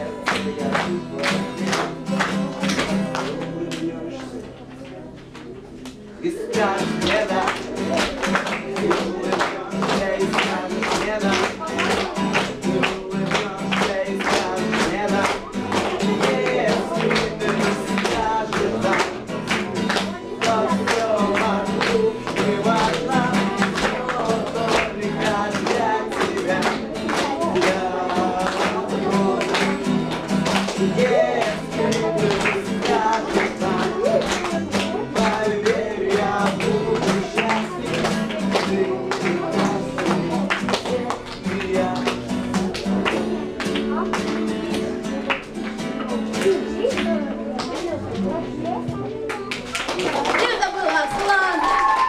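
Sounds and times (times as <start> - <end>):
young man singing: 0.0 - 5.1, 6.2 - 48.0
acoustic guitar strumming: 0.0 - 5.6, 6.2 - 49.8.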